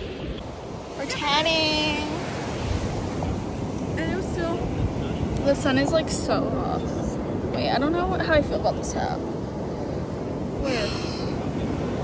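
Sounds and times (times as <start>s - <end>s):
ocean surf washing on shore: 0.0s - 12.0s
wind rumbling on microphone: 0.0s - 12.0s.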